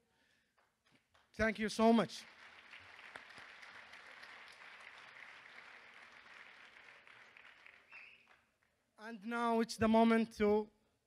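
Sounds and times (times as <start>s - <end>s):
audience applauding: 1.1s - 8.7s.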